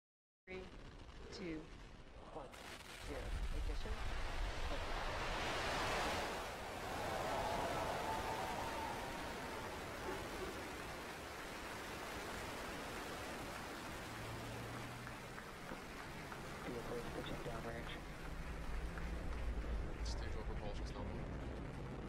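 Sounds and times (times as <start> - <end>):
rocket engines rumbling: 0.7 - 22.0.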